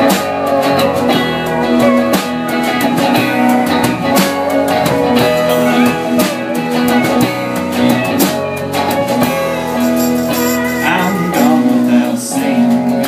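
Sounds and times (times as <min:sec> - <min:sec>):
electric guitar: 0:00.0 - 0:13.0
live band playing instrumental: 0:00.0 - 0:13.0.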